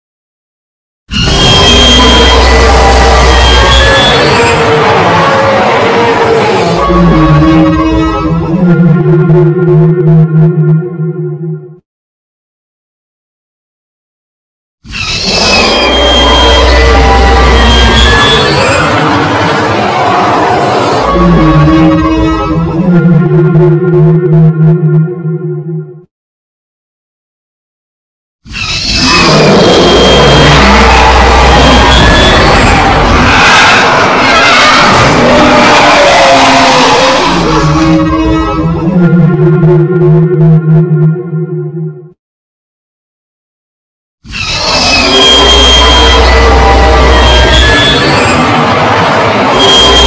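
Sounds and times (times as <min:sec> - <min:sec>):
monster roar with high screech: 0:01.1 - 0:08.8, 0:15.0 - 0:22.6, 0:28.6 - 0:39.0, 0:44.3 - 0:50.0
synthesizer music: 0:21.2 - 0:26.1.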